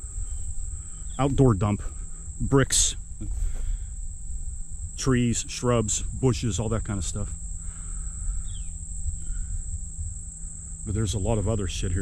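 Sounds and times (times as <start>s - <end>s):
insects trilling: 0.0s - 12.0s
low rumble: 0.0s - 12.0s
man speaking: 1.2s - 3.4s, 5.0s - 7.4s, 10.9s - 12.0s.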